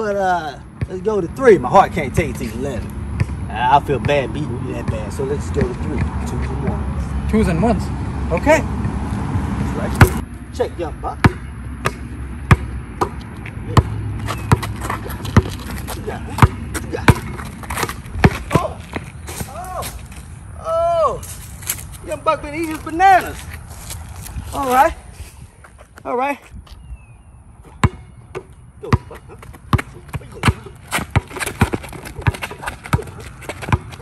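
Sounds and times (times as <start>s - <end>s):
basketball bouncing on concrete: 3.2s - 6.8s, 9.6s - 10.3s, 11.2s - 19.6s, 27.7s - 34.0s.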